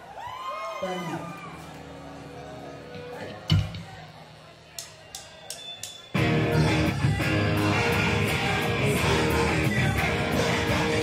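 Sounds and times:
drum stick clicks: 0:04.7 - 0:06.1.

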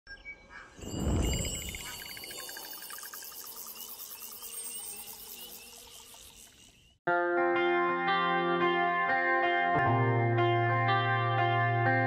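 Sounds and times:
insects chirping: 0:00.8 - 0:07.0.

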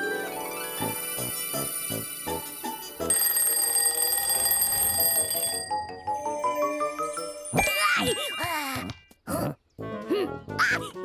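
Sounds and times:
bell alarm clock ringing: 0:01.6 - 0:08.7
cartoon music notes: 0:05.5 - 0:09.0.

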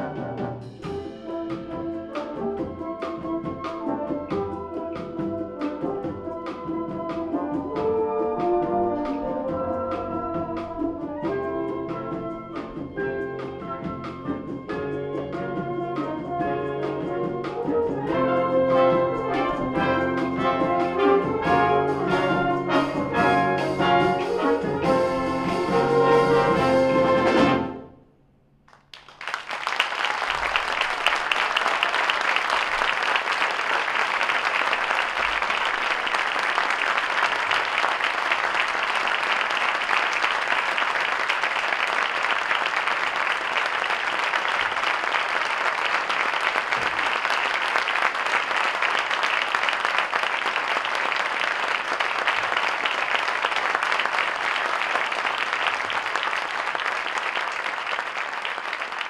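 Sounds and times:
audience applauding: 0:17.4 - 0:27.6, 0:28.7 - 0:59.0.

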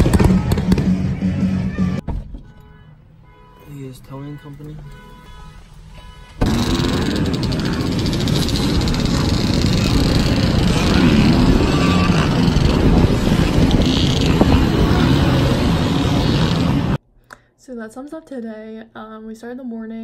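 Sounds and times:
dirt bike engines revving: 0:06.4 - 0:17.0
rushing noise on microphone: 0:06.4 - 0:17.0.

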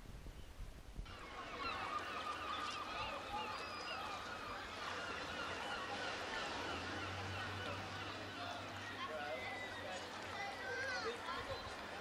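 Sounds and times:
flock of birds calling: 0:01.1 - 0:12.0.

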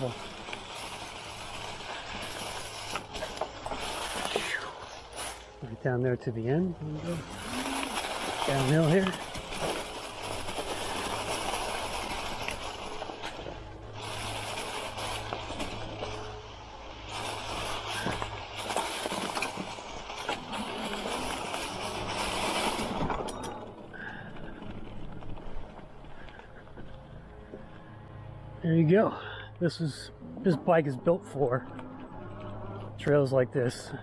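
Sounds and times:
tires rolling over dry leaves: 0:00.0 - 0:34.0.

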